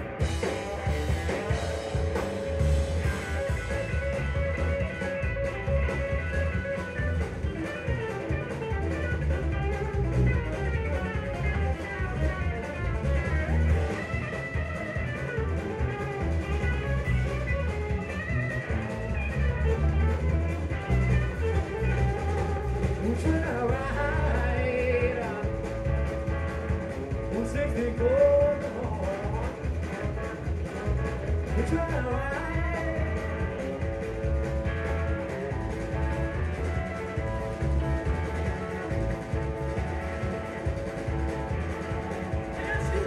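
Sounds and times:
blues-rock band playing: 0.0s - 43.0s
pitch-bent guitar lines: 0.0s - 43.0s.

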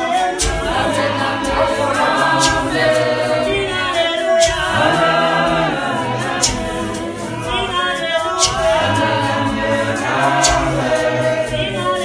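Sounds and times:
choir singing a cappella: 0.0s - 12.0s.

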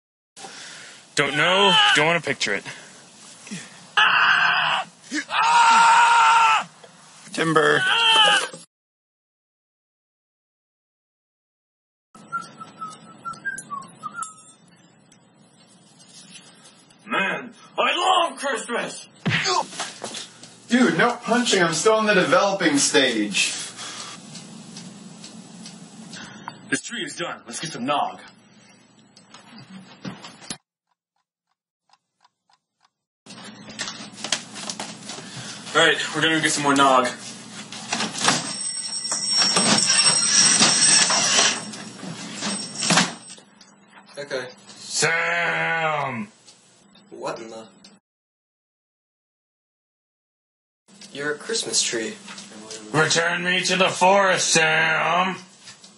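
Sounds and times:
person screaming: 1.2s - 2.1s, 4.0s - 6.7s, 7.6s - 8.6s, 19.3s - 19.7s, 45.0s - 46.3s
room noise: 33.3s - 48.0s.

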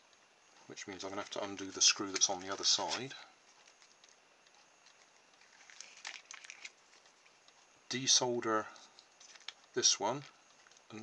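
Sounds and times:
handling plastic toy: 0.8s - 7.7s, 8.8s - 11.0s.

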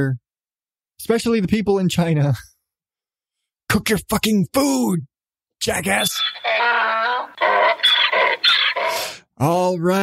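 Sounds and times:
donkey braying: 5.9s - 9.2s.

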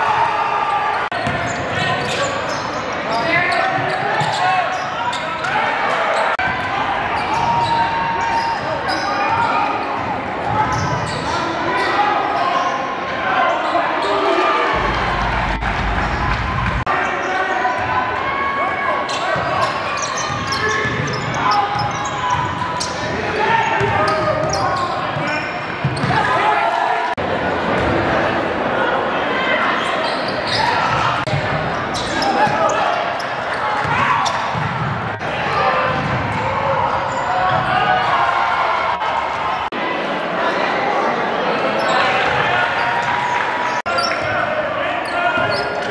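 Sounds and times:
indistinct echoing voices: 11.4s - 19.8s.

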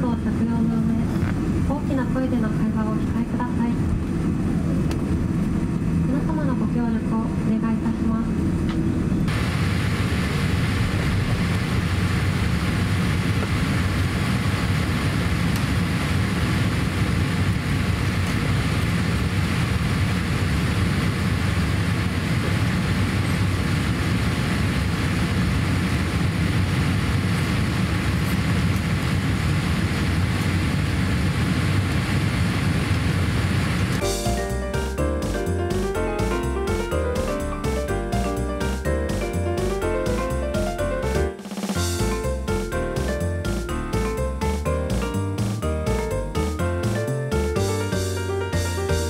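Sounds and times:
jet airliner cabin noise: 0.0s - 34.2s.

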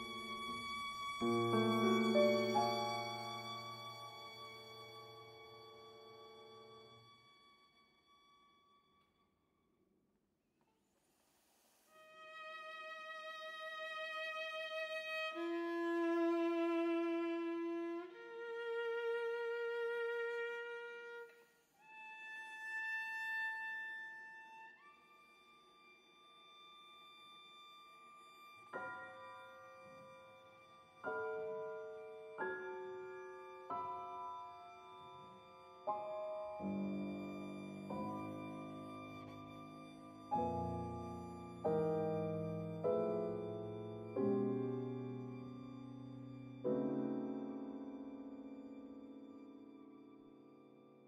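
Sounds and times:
viola long held notes: 0.0s - 5.6s
piano chords: 0.0s - 6.1s, 28.8s - 50.5s.

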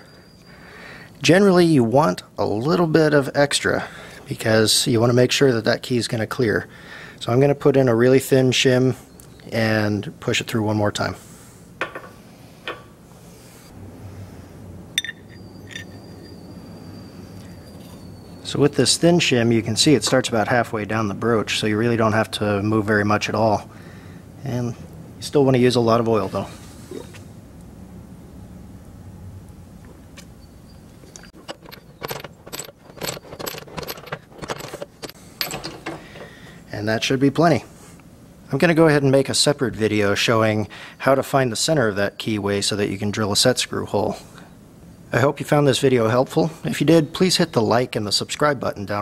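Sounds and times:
faint high ringing tone: 0.0s - 0.6s, 15.0s - 18.8s
low shop hum: 0.0s - 49.0s
light metal clinks: 15.0s - 16.4s.

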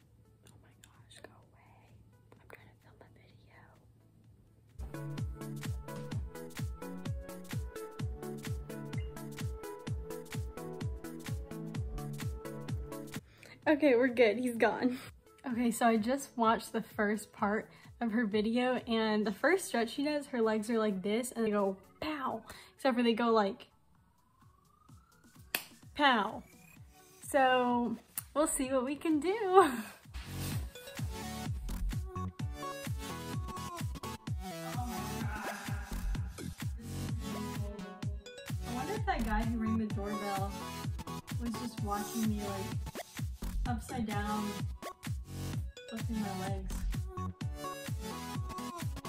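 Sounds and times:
faint whispering: 0.4s - 3.9s
faint rising whistle-like tone: 24.2s - 25.5s
hand snap: 25.4s - 25.8s.

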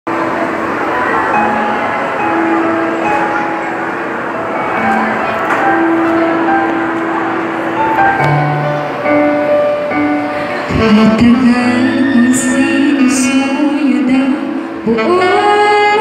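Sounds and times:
noisy background: 0.1s - 16.0s.

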